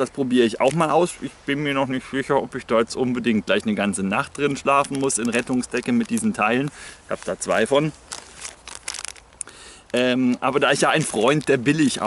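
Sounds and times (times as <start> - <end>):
plastic packets crinkling: 3.8 - 12.0.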